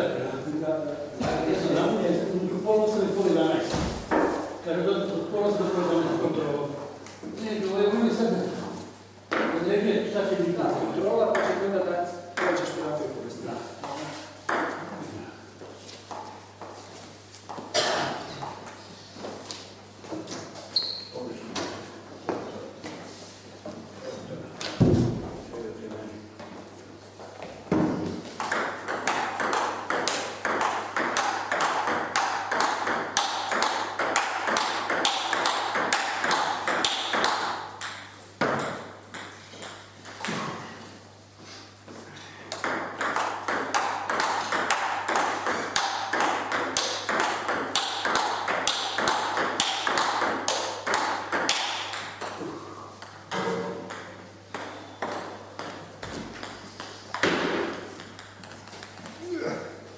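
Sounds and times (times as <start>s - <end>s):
table tennis ball rally: 12.4s - 12.8s, 13.8s - 14.9s, 27.7s - 40.6s, 42.5s - 59.4s.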